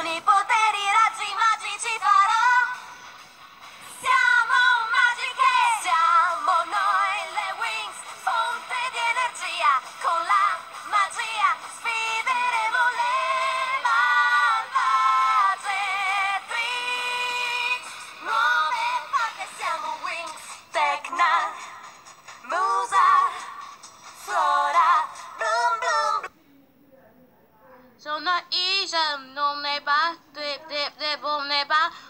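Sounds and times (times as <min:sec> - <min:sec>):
a cappella harmony singing: 0:00.0 - 0:26.3.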